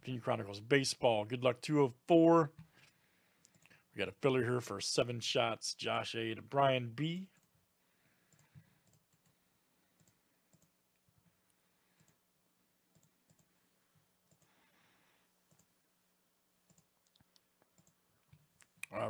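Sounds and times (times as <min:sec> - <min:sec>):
computer mouse clicks: 0:03.4 - 0:03.8, 0:08.3 - 0:09.4, 0:10.0 - 0:10.8, 0:12.9 - 0:13.5, 0:14.2 - 0:14.5, 0:15.5 - 0:15.7, 0:16.7 - 0:18.8.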